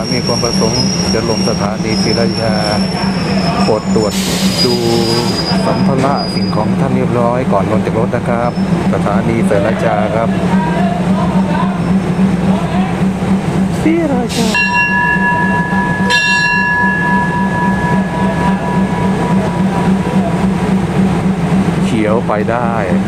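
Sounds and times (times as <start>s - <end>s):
station bell ringing: 0.0s - 21.8s
diesel engine droning: 0.0s - 23.0s.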